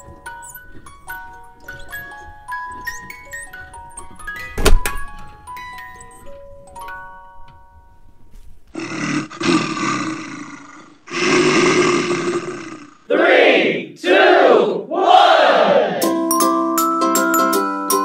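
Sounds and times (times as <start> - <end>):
faint tinkling notes: 0.0 - 8.3
loud roar-like growls: 8.8 - 13.1
rasping breath-like sounds: 8.8 - 13.1.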